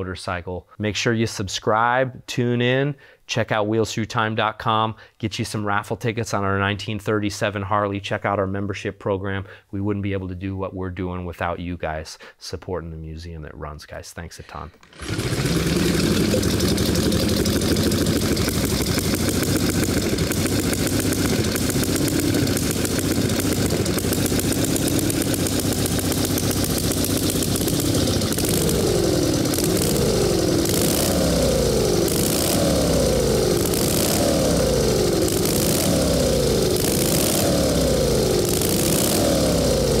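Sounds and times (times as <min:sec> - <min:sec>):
motorcycle engine revving: 0:14.8 - 0:40.0.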